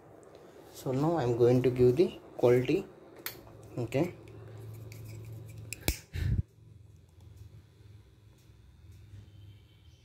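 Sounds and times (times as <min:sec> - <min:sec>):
low steady hum: 0:00.0 - 0:10.0
lighter click: 0:05.6 - 0:06.1.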